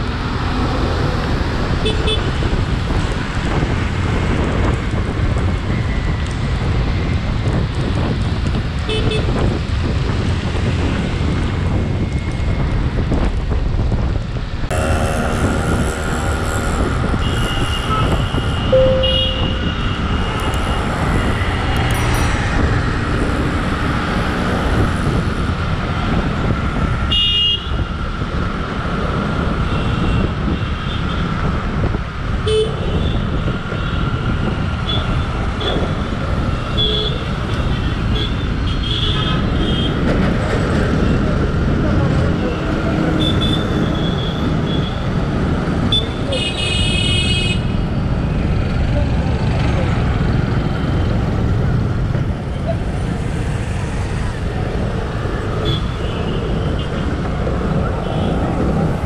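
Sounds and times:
road and traffic rumble: 0.0s - 59.0s
vehicle horn toots: 17.2s - 19.9s.

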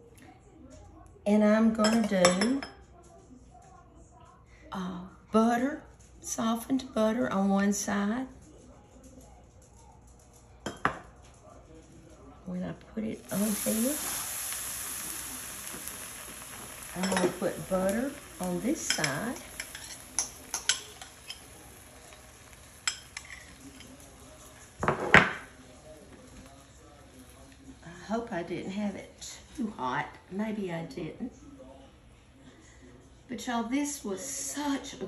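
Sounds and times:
faint sizzle: 0.0s - 35.0s
knife clinking against bowl and skillet: 16.9s - 17.7s, 18.4s - 25.5s
metal knife clinking: 18.8s - 22.2s.

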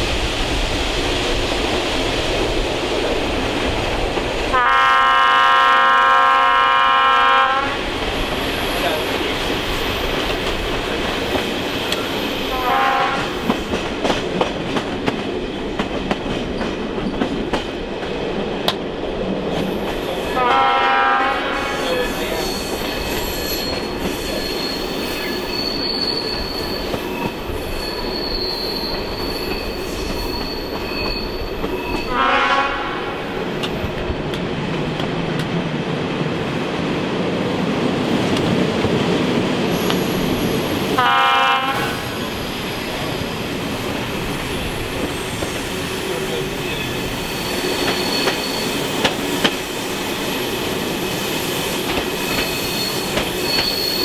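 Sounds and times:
train coach rumbling: 0.0s - 54.0s
diesel locomotive horn blasts: 4.5s - 7.9s, 12.5s - 13.4s, 20.4s - 21.9s, 32.1s - 33.3s, 41.0s - 42.2s
high wheel squeal: 21.8s - 32.2s, 46.6s - 49.0s, 52.2s - 54.0s.

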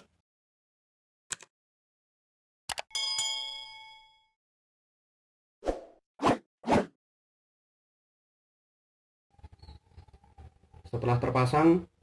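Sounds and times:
notification bell ding: 2.9s - 4.4s.

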